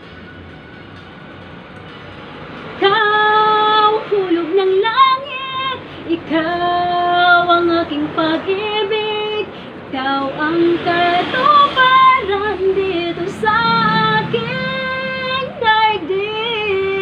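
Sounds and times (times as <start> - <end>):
woman singing ballad: 2.8 - 17.0.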